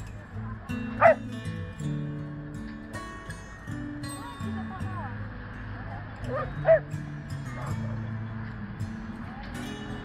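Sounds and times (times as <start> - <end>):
background music: 0.0 - 10.0
dog yipping: 1.0 - 1.2, 6.3 - 6.9.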